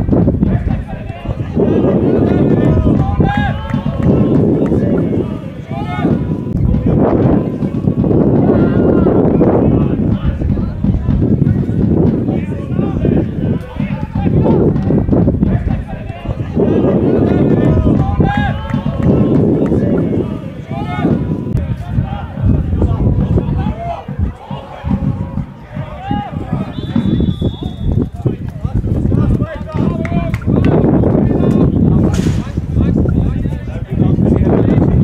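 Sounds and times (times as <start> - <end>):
steady low rumble: 0.0 - 35.0
players shouting: 0.4 - 31.7.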